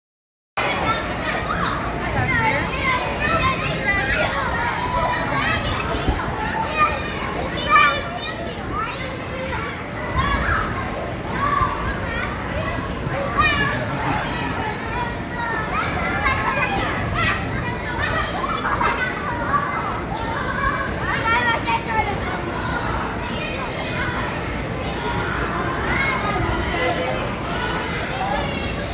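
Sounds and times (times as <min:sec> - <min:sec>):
children shouting and laughing: 0:00.6 - 0:28.9.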